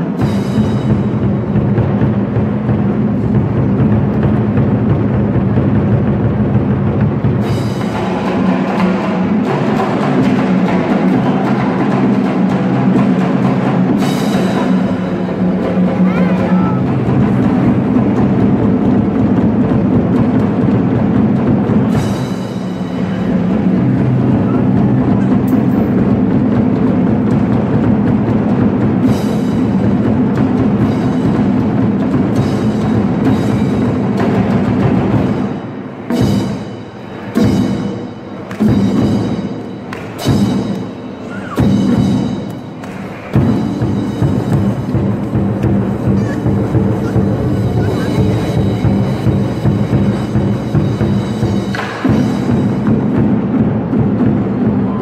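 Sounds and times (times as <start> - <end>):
large barrel drums pounding: 0.0 - 55.0.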